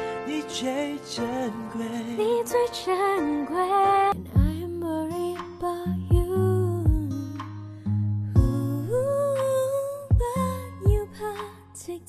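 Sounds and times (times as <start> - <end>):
soft instrumental accompaniment: 0.0 - 12.0.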